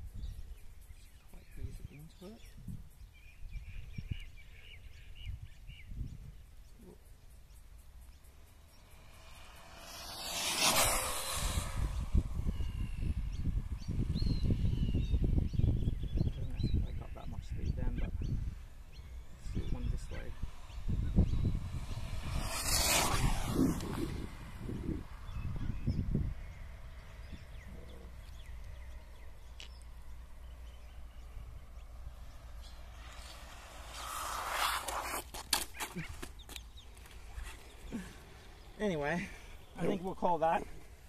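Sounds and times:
wind buffeting microphone: 0:01.5 - 0:04.5, 0:05.1 - 0:06.6, 0:08.7 - 0:35.2
rc car motor high-pitched rush: 0:07.1 - 0:16.8, 0:18.2 - 0:40.9.

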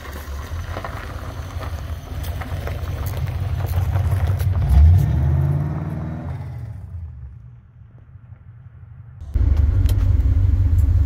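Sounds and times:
car engine revving: 0:03.2 - 0:07.2.

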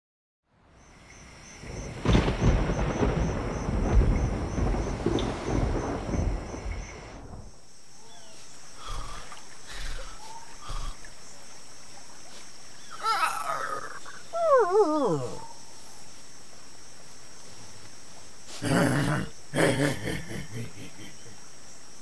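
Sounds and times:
soft steady hiss: 0:06.6 - 0:22.0.

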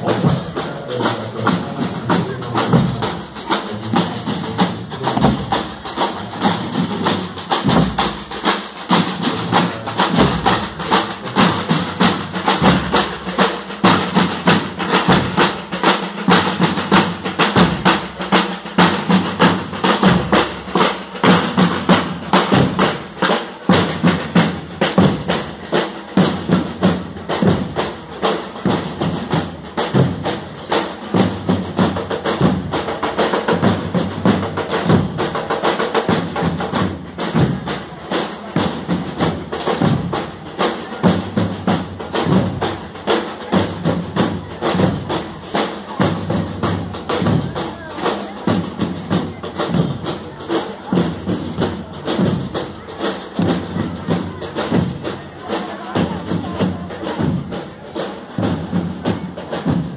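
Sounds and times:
bass drum beats: 0:00.0 - 0:15.6
snare drum strokes: 0:00.0 - 0:59.9.

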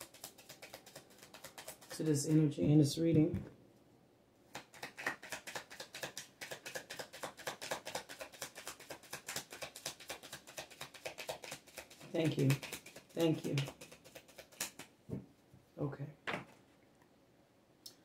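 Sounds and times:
cards being shuffled: 0:00.0 - 0:02.3, 0:04.5 - 0:14.9.

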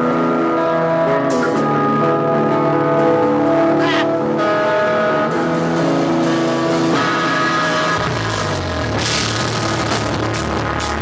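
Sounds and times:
bass and drums: 0:00.0 - 0:11.0
electric guitars ringing: 0:00.0 - 0:11.0.

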